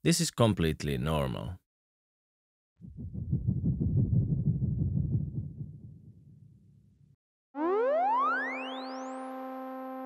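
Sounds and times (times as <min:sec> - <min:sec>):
deep pulsing synth rumble: 0:02.8 - 0:07.0.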